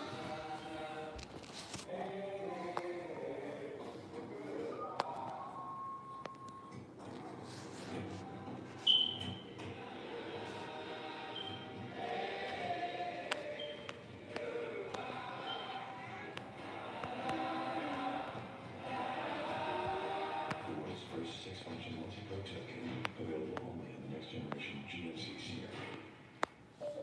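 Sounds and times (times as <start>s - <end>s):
commercial music through tv speaker: 0.0s - 27.0s.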